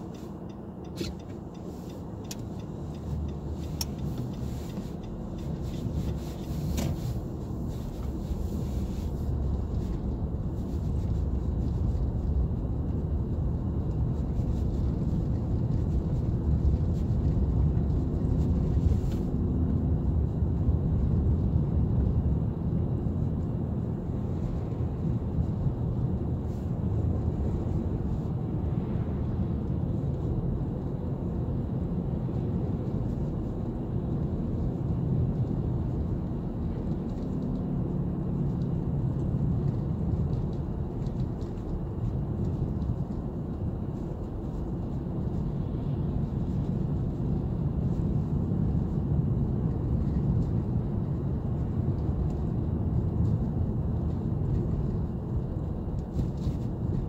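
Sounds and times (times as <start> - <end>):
car engine: 0.0 - 57.0.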